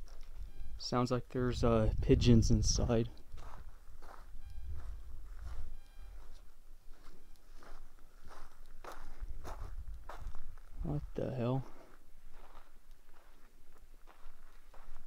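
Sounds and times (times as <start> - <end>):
wind rumble on microphone: 1.5 - 3.7, 9.1 - 10.9
footsteps crunching on gravel: 3.2 - 15.0.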